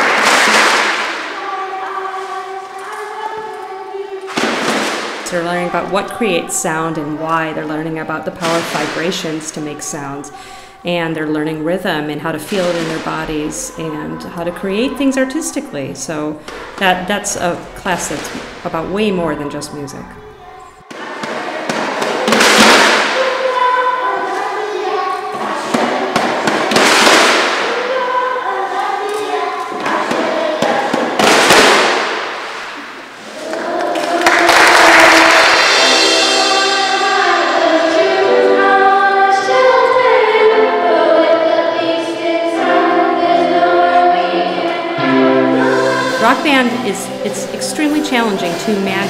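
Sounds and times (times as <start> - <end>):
children shaking percussion: 0.0 - 10.9, 11.5 - 49.0
girls singing together: 0.0 - 49.0
children's voices: 1.1 - 32.0, 32.7 - 49.0
rock band playing: 35.6 - 40.7, 42.6 - 48.8.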